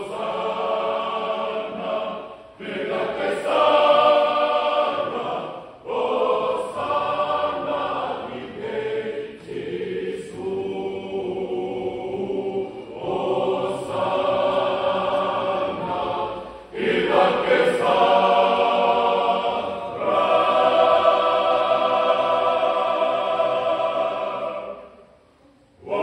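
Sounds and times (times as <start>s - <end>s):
choir singing: 0.0s - 26.0s.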